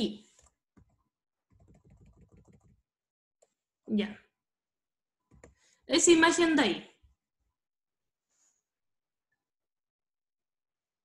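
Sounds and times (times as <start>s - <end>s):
faint keyboard typing: 0.3s - 2.8s, 5.3s - 5.7s.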